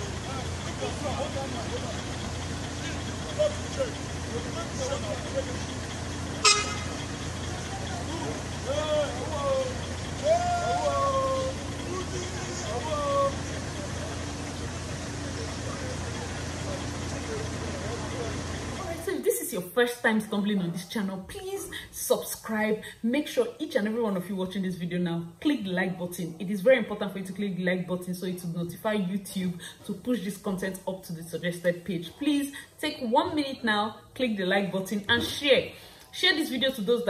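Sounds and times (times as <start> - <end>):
distant voices talking and calling: 0.0 - 18.9
low street rumble: 0.0 - 37.0.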